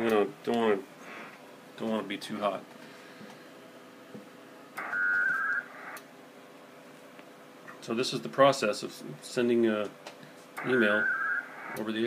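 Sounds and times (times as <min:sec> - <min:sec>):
radio digital data tones: 0:04.8 - 0:06.0, 0:10.6 - 0:12.0.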